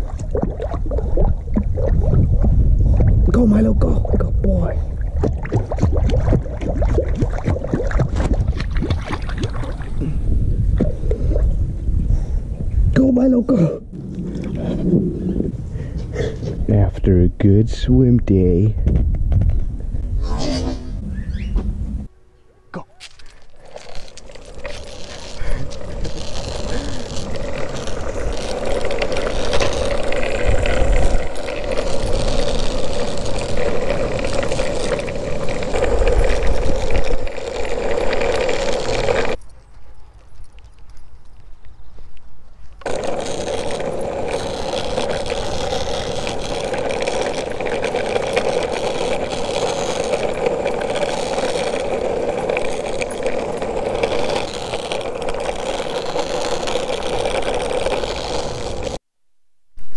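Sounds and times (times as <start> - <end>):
wind buffeting microphone: 0.0 - 22.1, 25.3 - 38.0
electric skateboard wheels humming: 23.0 - 39.4, 42.8 - 59.0.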